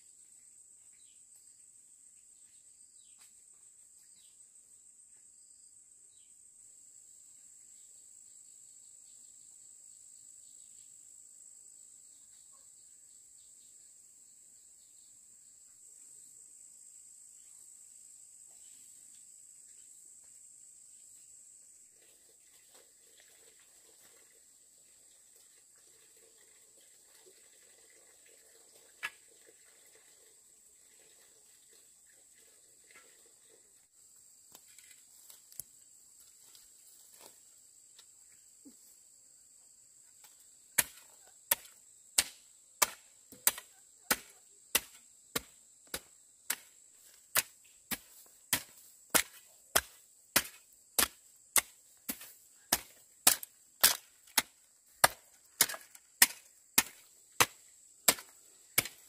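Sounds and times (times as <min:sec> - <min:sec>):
hoe chopping into stony soil: 0:40.2 - 0:59.0.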